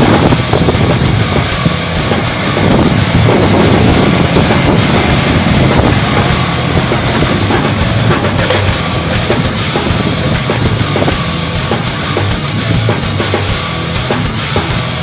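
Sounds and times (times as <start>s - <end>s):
tractor diesel engine under load: 0.0s - 15.0s
cultivator tines clattering: 4.0s - 12.7s.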